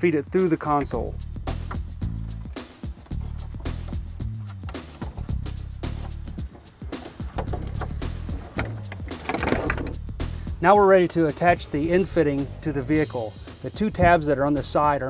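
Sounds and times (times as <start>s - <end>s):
background music with bass: 0.0s - 15.0s.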